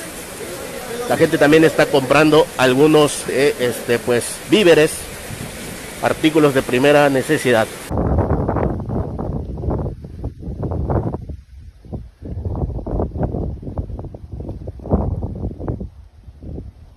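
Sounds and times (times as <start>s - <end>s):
gusting wind on microphone: 0.0s - 16.9s.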